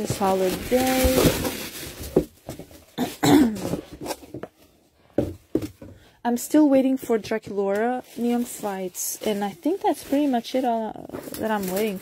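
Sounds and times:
person clearing throat: 0:03.0 - 0:03.8.

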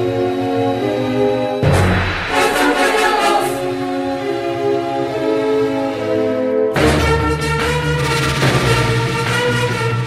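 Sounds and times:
dramatic music with held chords: 0:00.0 - 0:10.0
choir-like vocals: 0:01.7 - 0:05.2.

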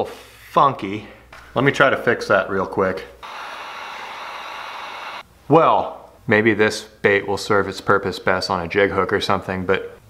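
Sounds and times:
heat gun blowing hot air: 0:03.2 - 0:05.2.

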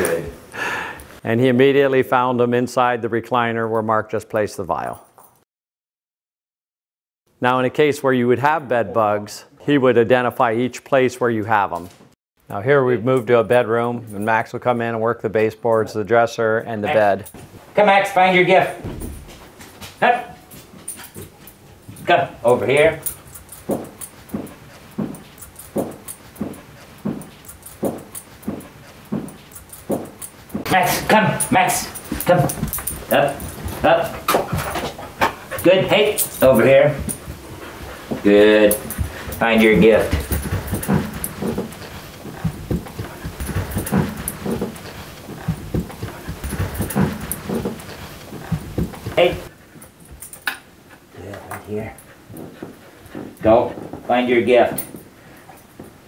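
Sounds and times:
paws and footsteps on carpet: 0:18.8 - 0:56.0
dog breathing: 0:23.0 - 0:30.7, 0:31.9 - 0:54.1.

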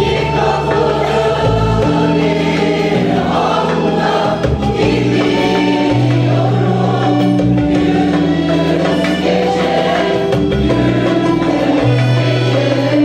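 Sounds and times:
accordion: 0:00.0 - 0:13.0
women's choir singing: 0:00.0 - 0:13.0.

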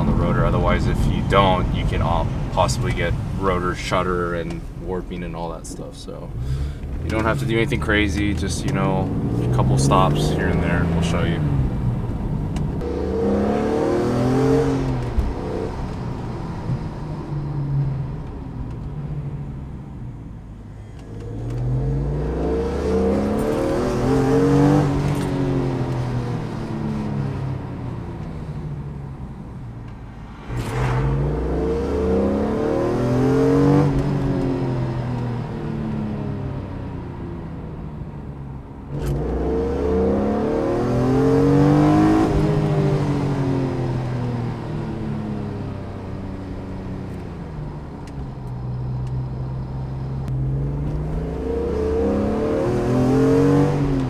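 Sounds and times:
car engine accelerating and easing: 0:06.3 - 0:19.8, 0:20.8 - 0:37.6, 0:38.2 - 0:54.0.

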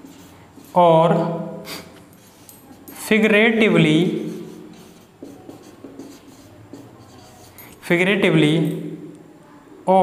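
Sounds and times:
marker writing on whiteboard: 0:00.0 - 0:09.0.

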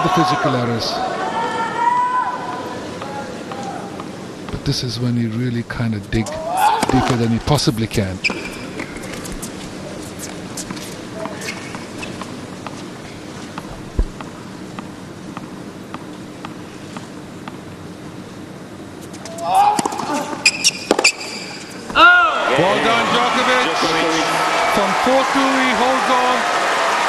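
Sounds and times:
loud shout: 0:00.0 - 0:02.6, 0:06.4 - 0:07.1, 0:19.4 - 0:20.3, 0:22.0 - 0:27.0
hushed crowd hum: 0:00.0 - 0:27.0
tennis ball bouncing on court: 0:02.5 - 0:04.6, 0:13.6 - 0:17.6, 0:19.8 - 0:21.4.

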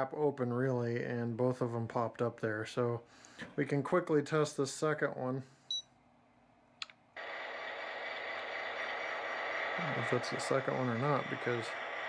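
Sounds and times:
locomotive running sound effect: 0:07.2 - 0:12.0.

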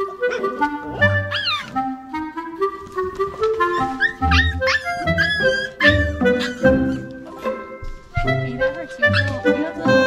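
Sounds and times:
puppies yelping and whining: 0:00.0 - 0:02.1, 0:03.1 - 0:07.2, 0:09.0 - 0:09.8
background music with woodwind tune: 0:00.0 - 0:10.0.

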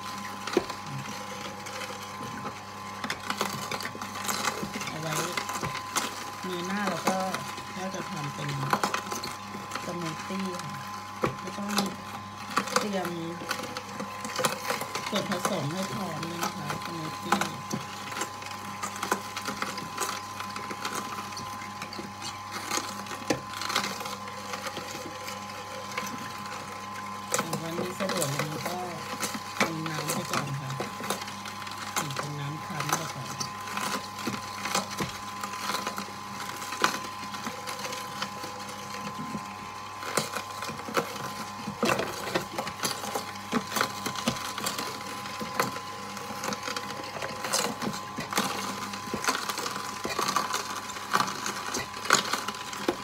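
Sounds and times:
juicer motor hum: 0:00.0 - 0:53.0
produce cracking and clicking: 0:11.2 - 0:53.0.

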